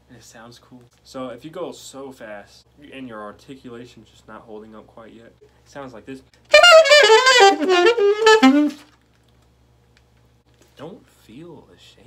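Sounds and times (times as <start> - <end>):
alto saxophone fast run: 6.5 - 8.9.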